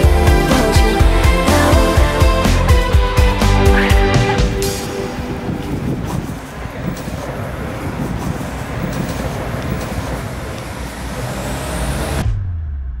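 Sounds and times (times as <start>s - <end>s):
road vehicle running close by: 4.8s - 12.3s.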